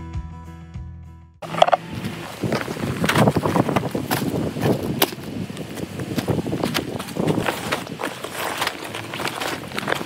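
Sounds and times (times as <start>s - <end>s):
vinyl crinkling and rustling: 6.1s - 10.0s.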